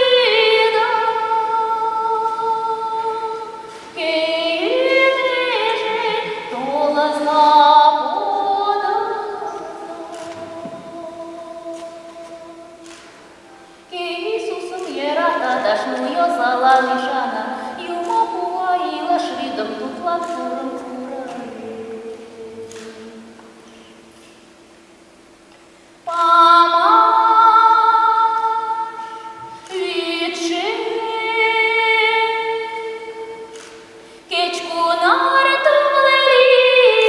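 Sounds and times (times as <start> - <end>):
woman singing long notes: 0.0 - 13.0, 13.8 - 23.4.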